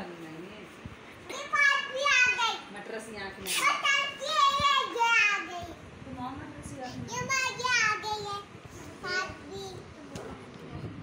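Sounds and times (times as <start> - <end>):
girl's high-pitched voice: 1.3 - 2.7, 3.5 - 5.8, 6.8 - 10.4.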